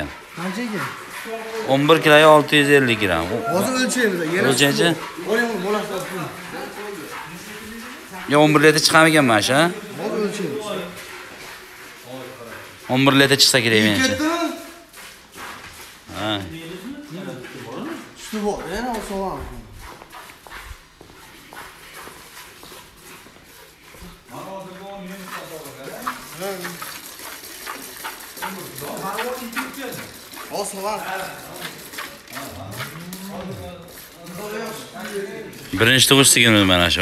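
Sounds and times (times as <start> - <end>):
milk squirting into metal bucket: 0.0 - 16.0, 24.0 - 37.0.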